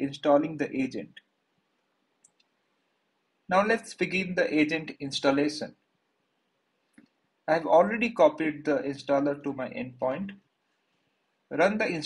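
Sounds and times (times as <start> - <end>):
faint short clicks: 2.2 - 2.6.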